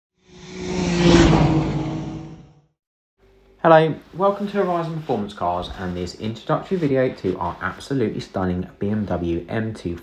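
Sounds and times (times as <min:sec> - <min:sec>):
car-like whoosh: 0:00.2 - 0:02.8
engine hum: 0:00.3 - 0:02.6.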